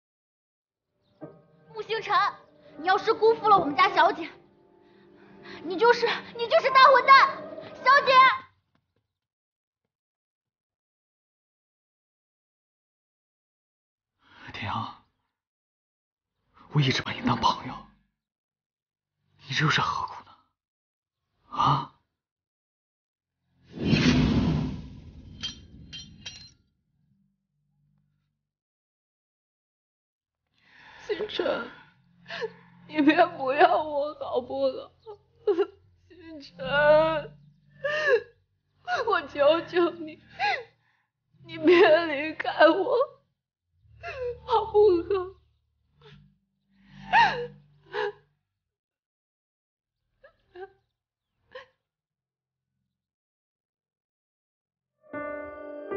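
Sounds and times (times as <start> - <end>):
loud whoosh: 23.8 - 25.8.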